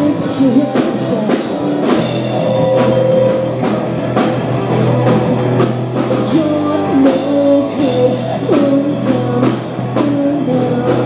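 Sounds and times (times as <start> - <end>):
rock band playing live: 0.0 - 11.0
drum kit hits: 1.9 - 6.2.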